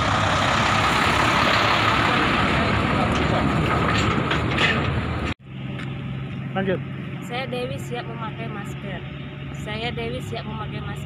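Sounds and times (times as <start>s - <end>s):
large truck passing: 0.0s - 11.0s.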